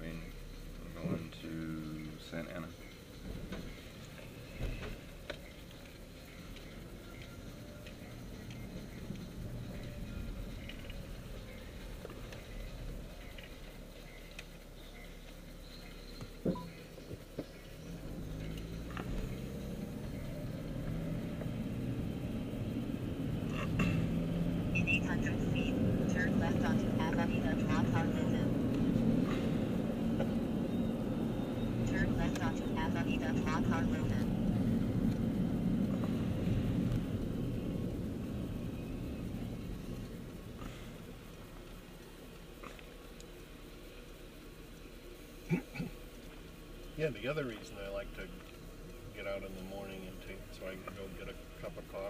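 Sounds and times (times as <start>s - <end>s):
car engine and road rumble: 0.0s - 52.0s.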